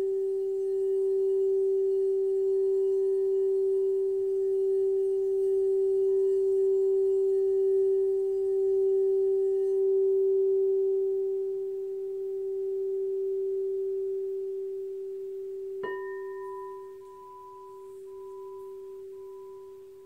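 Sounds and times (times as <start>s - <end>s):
singing bowl low tone: 0.0s - 20.0s.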